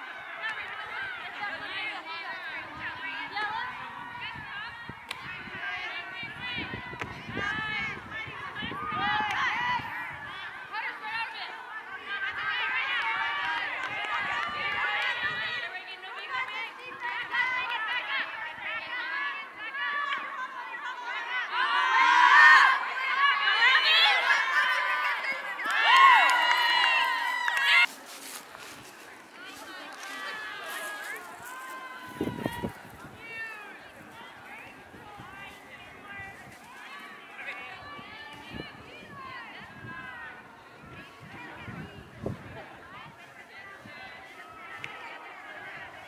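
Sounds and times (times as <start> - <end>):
high voices shouting: 0.0 - 27.9, 29.3 - 46.0.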